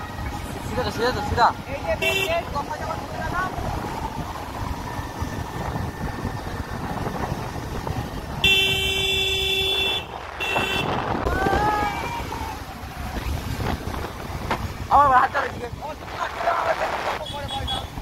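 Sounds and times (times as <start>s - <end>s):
wind and road noise: 0.0s - 18.0s
vehicle horn honking: 2.0s - 2.4s, 8.4s - 11.1s, 17.2s - 18.0s.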